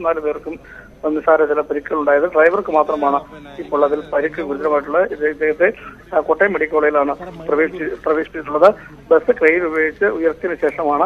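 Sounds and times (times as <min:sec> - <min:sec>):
man talking over telephone: 0:01.3 - 0:11.0.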